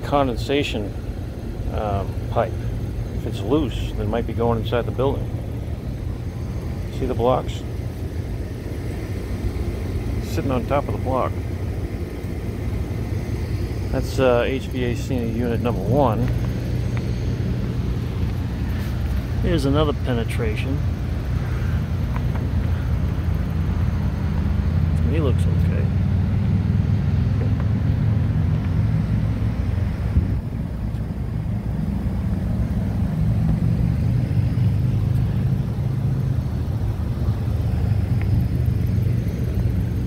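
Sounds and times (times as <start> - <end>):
hvac unit humming: 0.0 - 40.0.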